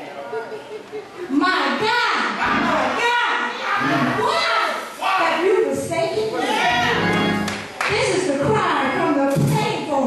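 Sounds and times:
preacher speaking: 2.3 - 3.2.

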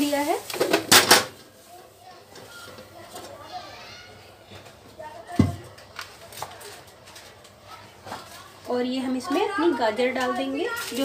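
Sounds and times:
kitchen clatter: 0.0 - 1.5
faint distant voices: 0.6 - 11.0.

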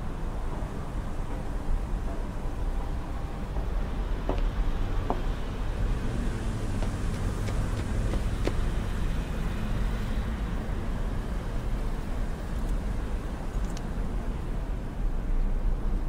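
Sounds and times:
low rumble of city ambience: 0.0 - 16.0.

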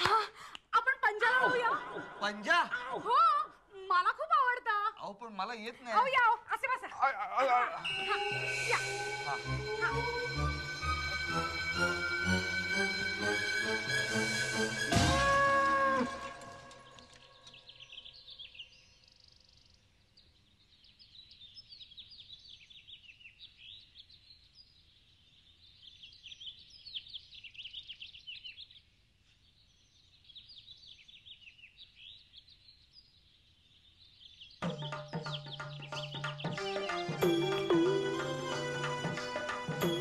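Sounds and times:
music score: 7.8 - 17.0
small birds chirping: 16.3 - 37.7.

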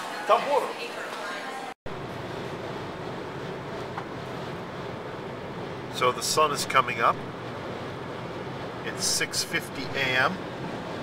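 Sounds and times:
low engine hum: 1.9 - 11.0.

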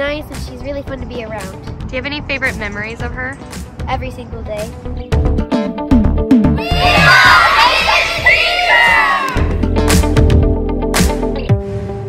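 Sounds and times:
children cheering and shouting: 6.6 - 9.6.

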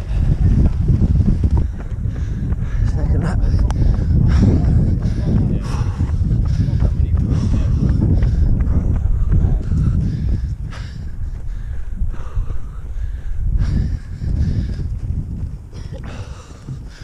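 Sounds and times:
runner breathing hard: 0.0 - 17.0
wind and handling rumble: 0.0 - 17.0.

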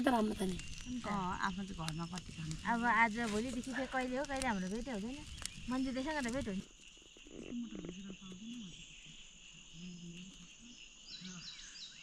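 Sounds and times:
faint voices murmuring: 0.0 - 11.7
insects chirring: 0.0 - 12.0.

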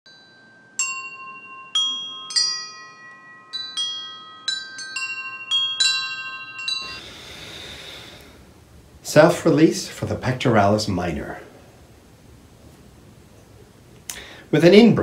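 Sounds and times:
chimes ringing: 0.1 - 8.3
faint room hiss: 0.1 - 15.0.

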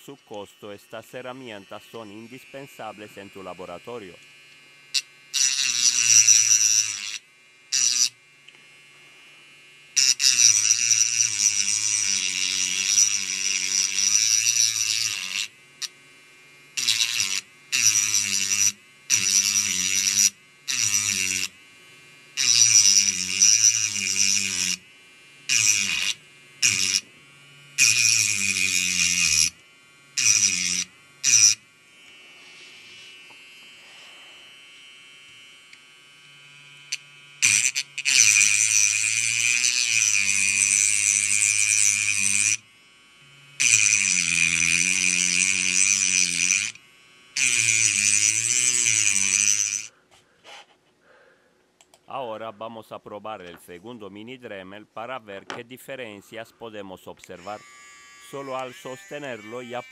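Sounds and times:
rotary tool grinding metal: 0.0 - 50.8, 55.0 - 59.9.

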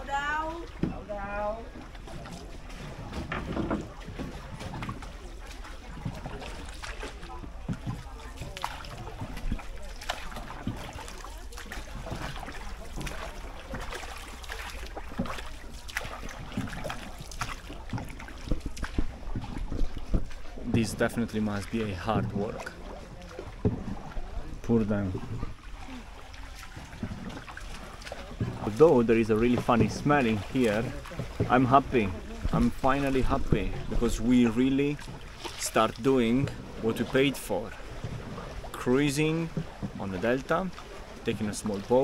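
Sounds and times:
paddle splashing in water: 0.0 - 42.0
light knocks on wooden boat: 15.1 - 21.0.

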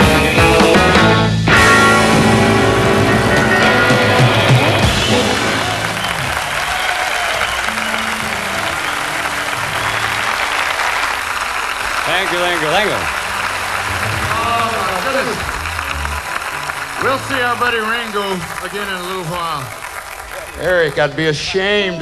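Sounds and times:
rockabilly band playing: 0.0 - 21.4
audience applauding and cheering: 1.6 - 21.8.

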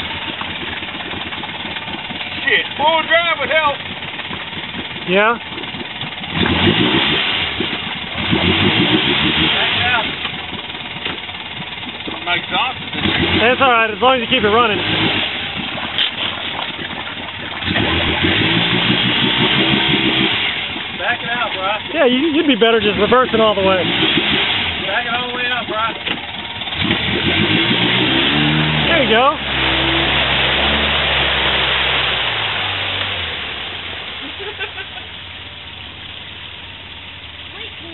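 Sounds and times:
utility vehicle engine revving: 0.0 - 37.9.

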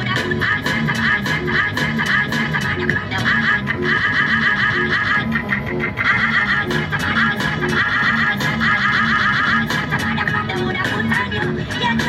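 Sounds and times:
steady bass line: 0.0 - 12.0.

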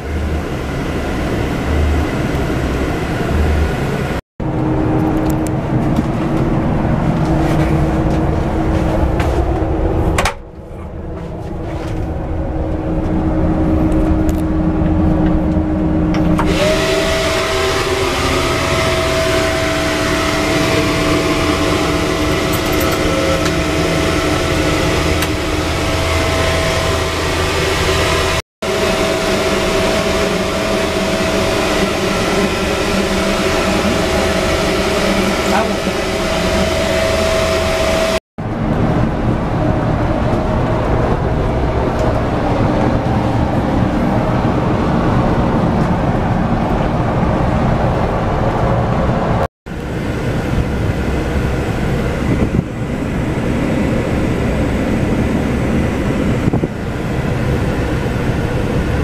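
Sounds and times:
coach engine and road drone: 0.0 - 59.0
constant hum: 0.0 - 59.0.

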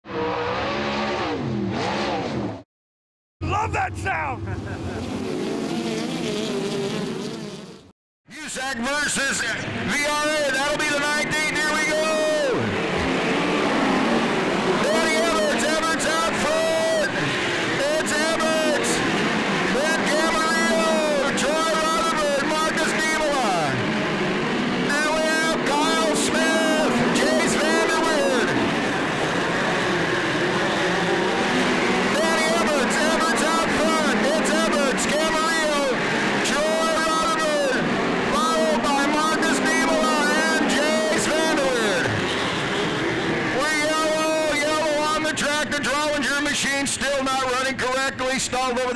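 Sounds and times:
race car engines revving: 0.0 - 2.6, 3.9 - 7.9, 9.0 - 46.4.

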